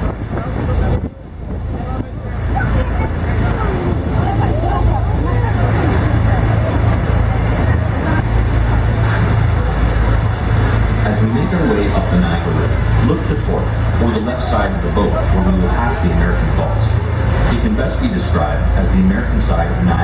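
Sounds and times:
boat engine rumble: 0:00.0 - 0:20.0
crowd talking: 0:00.0 - 0:20.0
rushing wind and water: 0:00.0 - 0:20.0.

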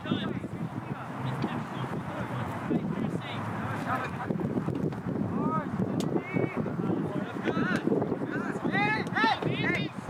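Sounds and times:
wind on microphone: 0:00.0 - 0:10.0
players and spectators shouting: 0:08.3 - 0:10.0.

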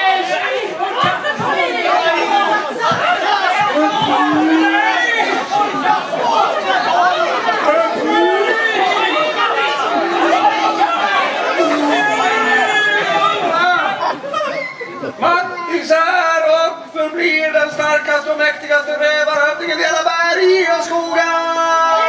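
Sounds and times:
many voices talking: 0:00.0 - 0:22.0.

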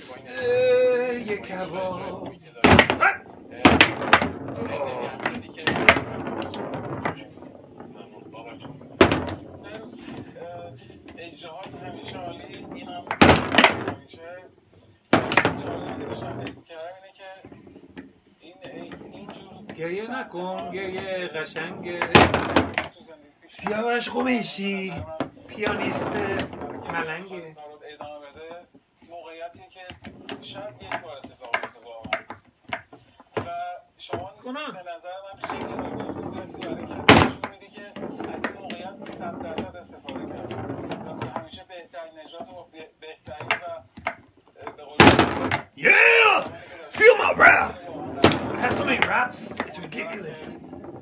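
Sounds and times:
foosball table clattering: 0:00.0 - 0:34.4, 0:35.3 - 0:51.0
foosball ball struck sharply: 0:08.7 - 0:09.8, 0:45.0 - 0:45.6.

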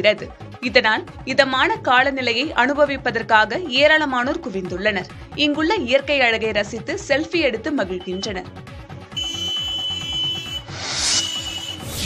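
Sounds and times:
high electronic beep: 0:09.2 - 0:12.0
whoosh: 0:10.6 - 0:12.0.

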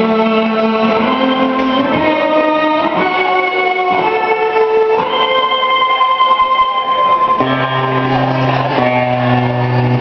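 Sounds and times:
electric guitars sustained chords: 0:00.0 - 0:10.0.

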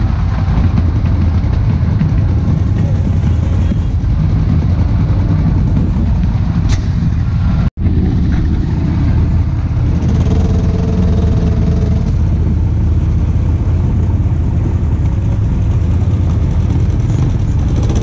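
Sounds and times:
vehicle engine running: 0:00.0 - 0:18.0.

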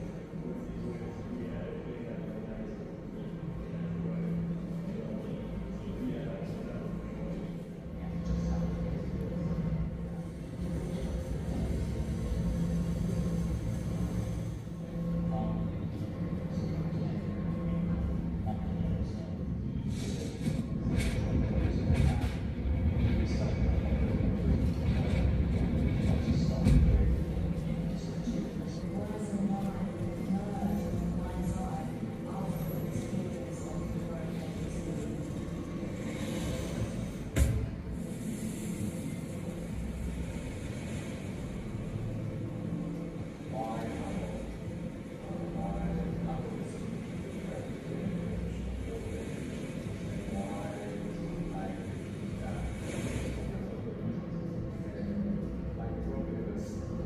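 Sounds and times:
faint steady tones: 0:00.0 - 0:57.0
low rumbling drone: 0:00.0 - 0:57.0.

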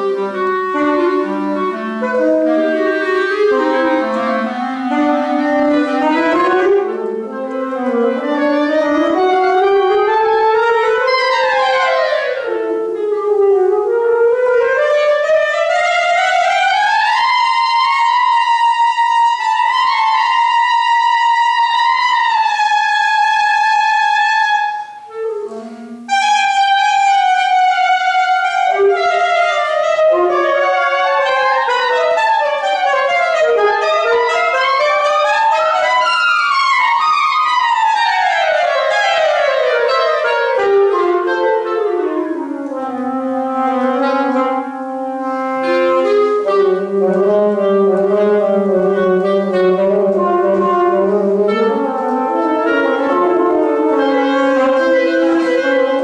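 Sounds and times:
clarinet and saxophone duet: 0:00.0 - 0:56.0.

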